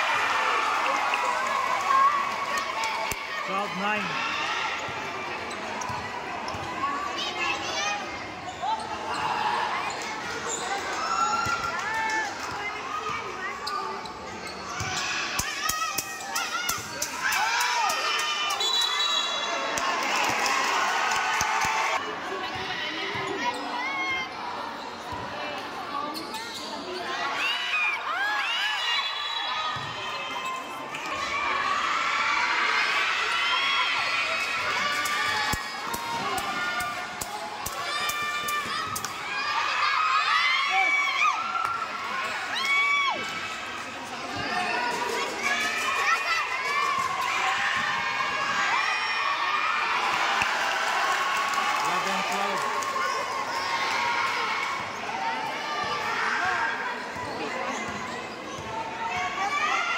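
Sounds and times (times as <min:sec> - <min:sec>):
shouts and chatter of people: 0:00.0 - 0:59.9
sneakers squeaking on court: 0:26.1 - 0:27.1.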